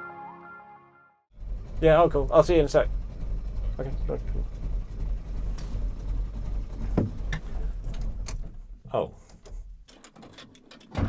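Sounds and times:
car engine idling: 0:01.3 - 0:08.9.

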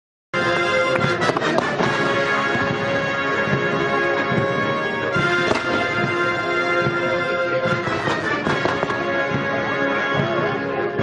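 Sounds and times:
military band playing chords: 0:00.4 - 0:11.0
pyrotechnic bangs: 0:05.3 - 0:06.2.

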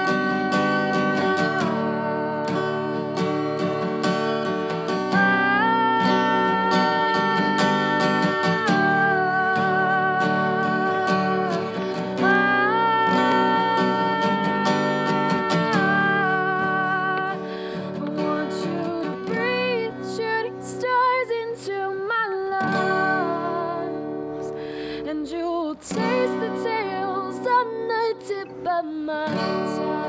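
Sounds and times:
acoustic guitar strummed: 0:00.0 - 0:30.0.

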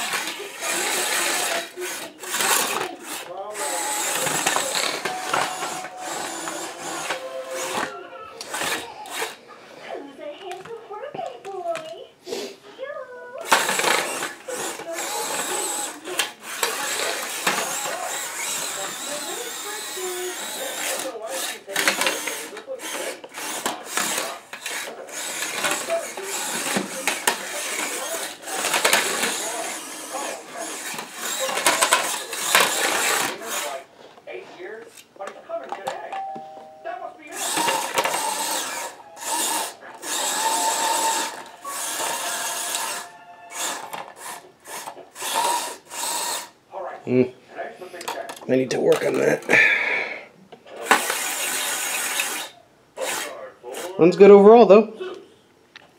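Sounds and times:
small electric motors whining: 0:00.0 - 0:09.4, 0:13.4 - 0:33.8, 0:37.3 - 0:46.6, 0:50.8 - 0:54.0.

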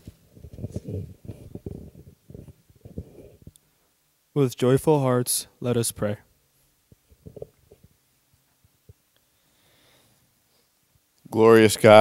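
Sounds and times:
microphone handling bumps: 0:00.0 - 0:03.6, 0:06.9 - 0:07.9.

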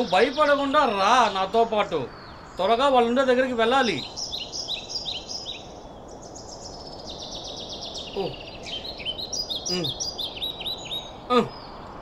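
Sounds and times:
birds chirping: 0:00.0 - 0:12.0
steady background hiss: 0:00.0 - 0:12.0.

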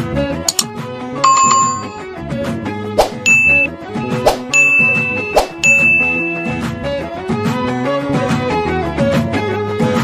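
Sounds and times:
background music: 0:00.0 - 0:10.0
sharp click: 0:00.5 - 0:00.7
bright ding chimes: 0:01.2 - 0:02.0, 0:03.3 - 0:03.7, 0:04.5 - 0:06.6.

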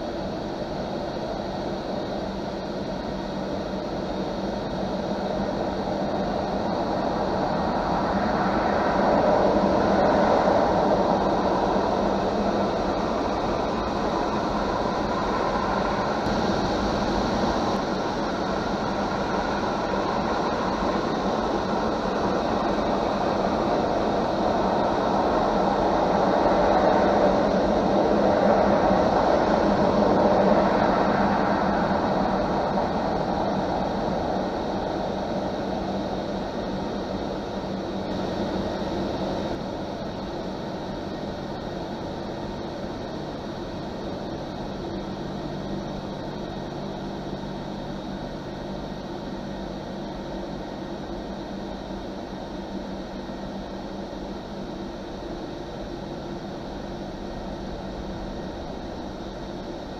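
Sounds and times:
low hum: 0:00.0 - 0:59.9.

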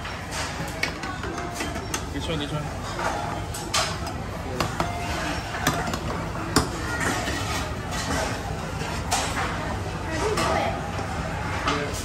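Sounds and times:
murmur of restaurant chatter: 0:00.0 - 0:12.0.

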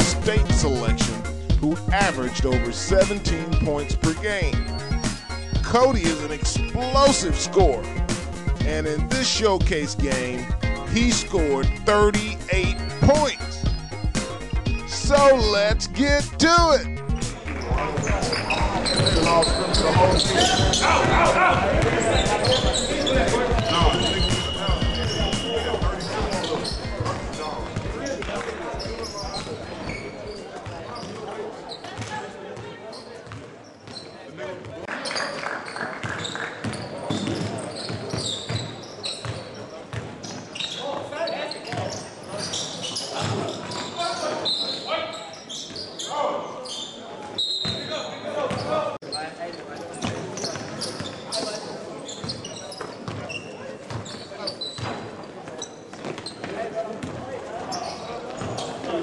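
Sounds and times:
voices calling out: 0:09.0 - 0:30.2.

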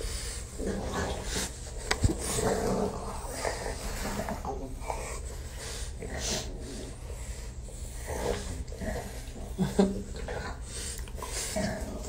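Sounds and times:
dogs making low vocal noises: 0:00.0 - 0:12.0
dogs licking: 0:09.8 - 0:12.0.

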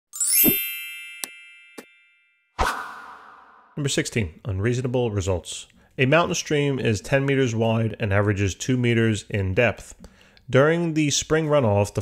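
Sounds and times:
bright ringing chime: 0:00.1 - 0:02.6.

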